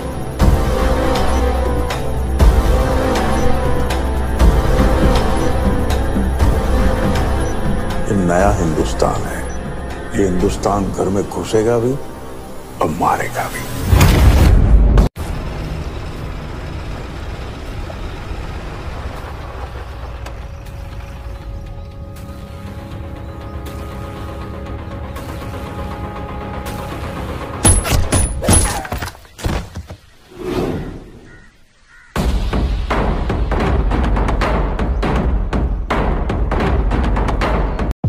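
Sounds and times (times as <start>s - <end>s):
jungle ambience: 0.0s - 14.4s, 15.2s - 37.8s
heavy drum-driven film score: 0.0s - 28.6s, 32.0s - 37.9s
crow cawing: 30.8s - 32.2s.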